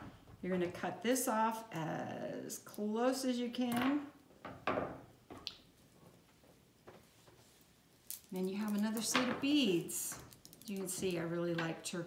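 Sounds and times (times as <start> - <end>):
beads and tools clicking on a table: 8.0 - 11.2.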